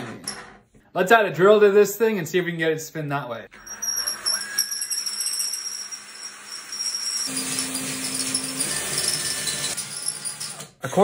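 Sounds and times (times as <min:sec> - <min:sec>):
cordless drill running: 0:03.5 - 0:10.8.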